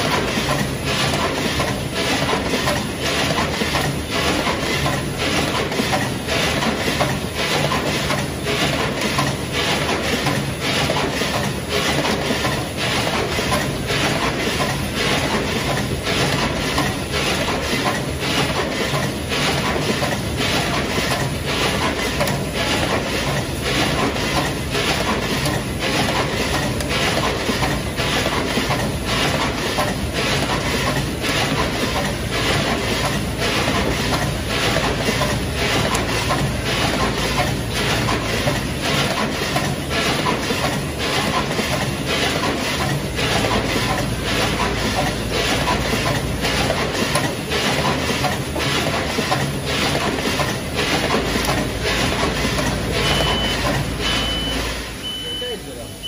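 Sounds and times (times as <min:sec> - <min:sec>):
high electronic beep: 0:53.0 - 0:56.0.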